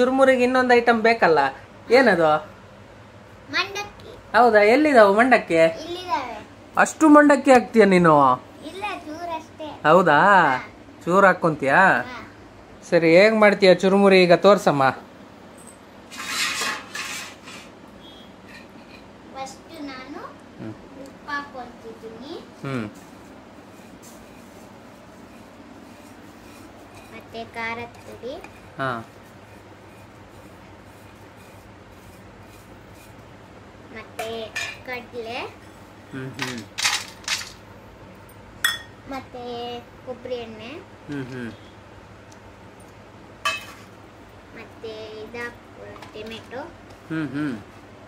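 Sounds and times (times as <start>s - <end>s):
steel dishes scraping on floor: 16.1s - 17.8s
metal cup and bowl clinking: 38.6s - 39.0s, 43.4s - 43.9s.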